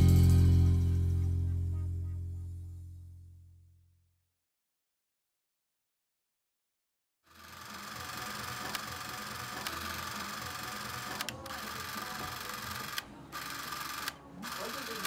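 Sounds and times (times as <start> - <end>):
small motor whirring: 7.3 - 15.0
clicks: 8.4 - 14.9.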